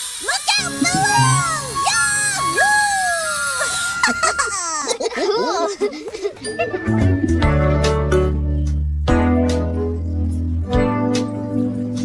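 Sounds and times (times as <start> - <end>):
cartoon character whooping: 0.5 - 5.0
children laughing: 0.5 - 7.6
light music: 0.6 - 3.2, 6.4 - 12.0.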